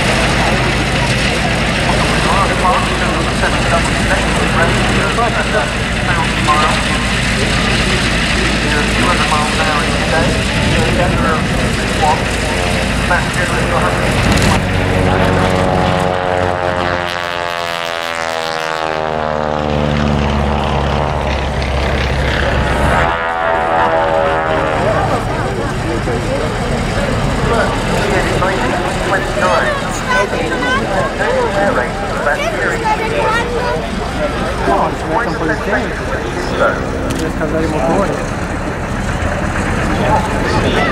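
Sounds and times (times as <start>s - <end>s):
propeller aircraft engine drone: 0.0s - 40.9s.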